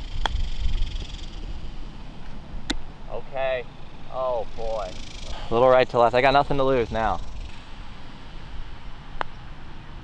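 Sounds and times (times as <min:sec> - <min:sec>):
wind rumble on microphone: 0:00.0 - 0:02.9
golf club striking ball: 0:02.6 - 0:02.9.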